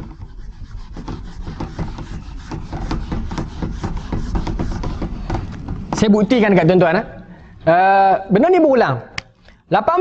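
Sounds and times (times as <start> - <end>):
eraser rubbing on whiteboard: 0.0 - 6.4.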